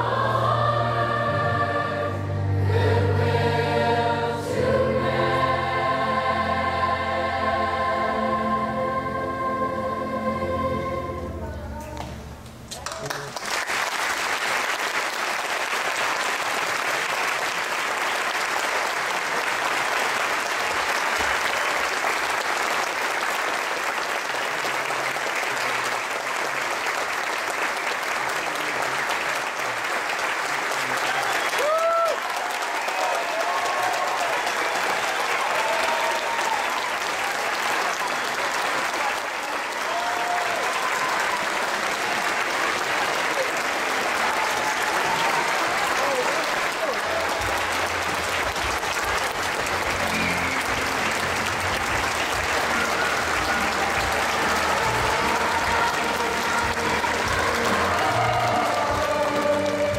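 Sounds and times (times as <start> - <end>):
audience applauding: 12.7 - 59.9.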